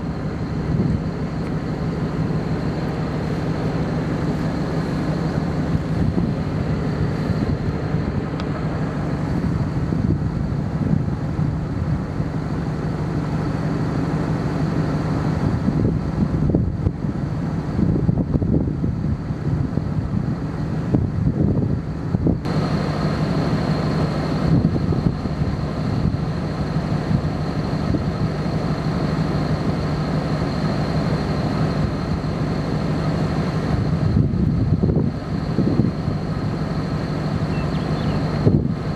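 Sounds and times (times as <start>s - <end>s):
wind buffeting microphone: 0.0s - 38.9s.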